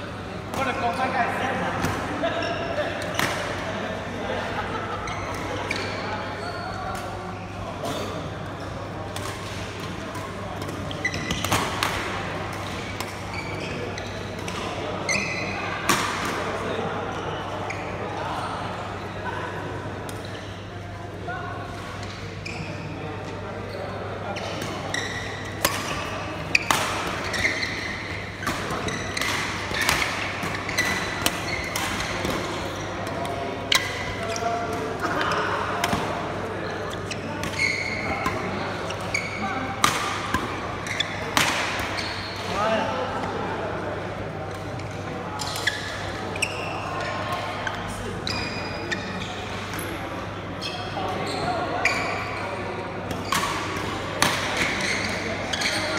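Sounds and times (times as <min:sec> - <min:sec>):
murmur of voices: 0:00.0 - 0:55.9.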